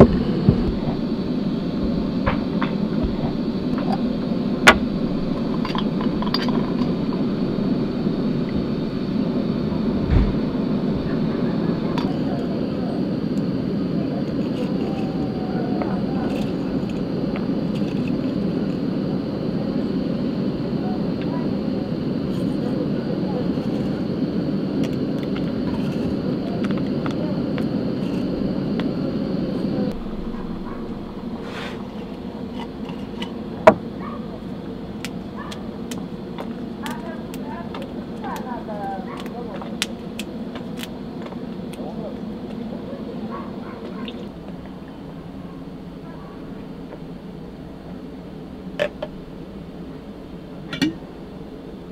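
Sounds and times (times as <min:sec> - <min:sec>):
fire rushing noise: 0:00.0 - 0:38.8
low thump: 0:10.0 - 0:10.6.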